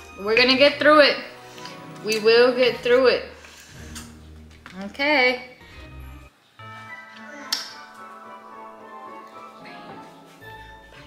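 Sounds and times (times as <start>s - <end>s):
background music chord tones: 5.6s - 11.0s.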